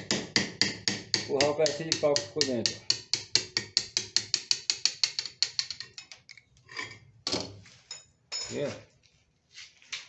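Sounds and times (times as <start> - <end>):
metal tapping on metal: 0.0 - 6.4.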